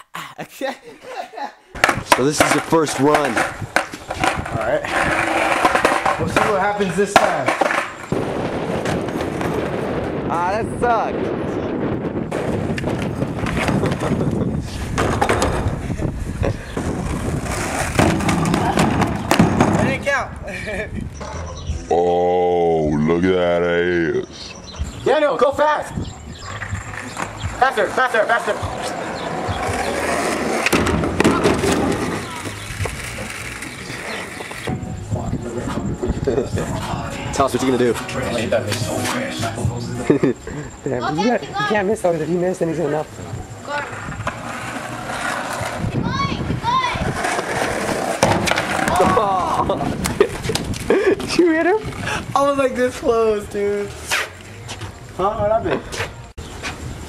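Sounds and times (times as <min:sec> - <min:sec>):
wind buffeting microphone: 0:01.8 - 0:07.0, 0:08.0 - 0:21.9, 0:24.2 - 0:27.6, 0:30.9 - 0:37.7, 0:43.1 - 0:53.5
skateboard wheels rolling on asphalt: 0:01.8 - 0:21.2, 0:24.7 - 0:39.7, 0:41.3 - 0:57.0.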